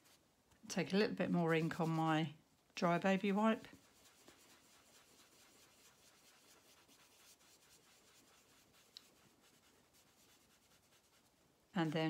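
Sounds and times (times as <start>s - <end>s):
wipe rubbing on card: 1.3s - 2.2s, 3.1s - 12.0s.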